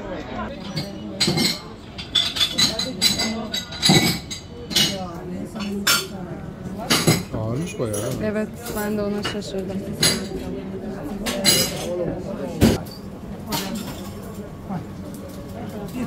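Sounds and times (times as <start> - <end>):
cups and spoons clinking: 0.6 - 6.2, 6.9 - 10.4, 11.2 - 12.0.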